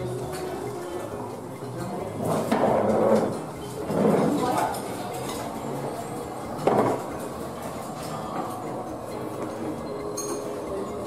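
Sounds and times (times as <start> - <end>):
dishes and cutlery clinking: 0.0 - 11.0.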